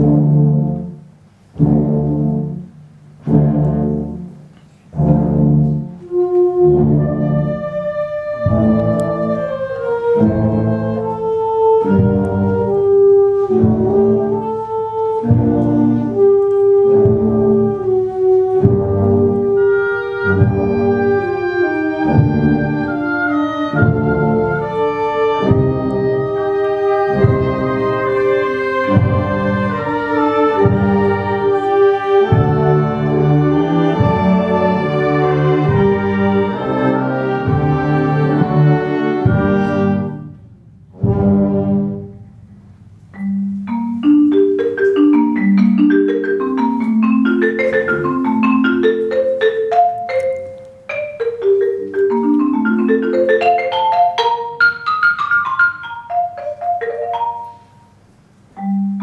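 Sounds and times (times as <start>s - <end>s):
loud brass chords: 0.0s - 1.0s, 1.6s - 42.4s
wind band playing: 0.0s - 58.0s.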